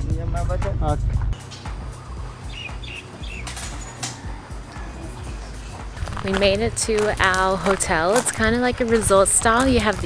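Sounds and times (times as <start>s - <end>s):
soft background music: 0.0s - 10.0s
small bird chirping: 2.0s - 3.6s.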